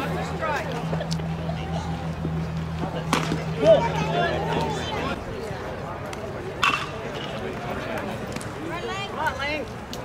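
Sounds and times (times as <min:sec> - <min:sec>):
crowd and player voices: 0:00.0 - 0:10.0
baseball bat hitting ball: 0:03.1 - 0:03.5.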